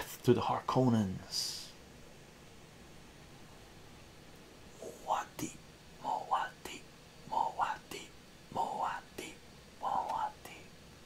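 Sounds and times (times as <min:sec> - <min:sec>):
man whispering: 0:00.0 - 0:01.8, 0:04.7 - 0:10.8.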